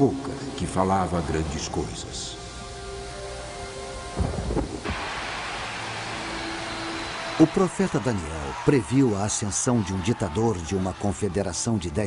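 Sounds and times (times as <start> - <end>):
rain hiss: 0.0 - 10.1
thunder rumble: 4.2 - 6.6.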